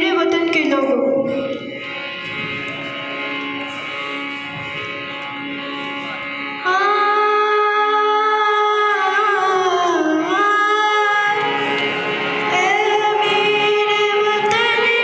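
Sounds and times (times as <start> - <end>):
harmonium playing held notes: 0.0 - 15.0.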